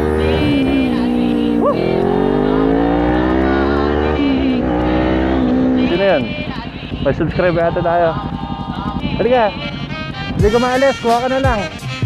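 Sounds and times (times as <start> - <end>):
motorcycle engine accelerating: 0.0 - 12.0.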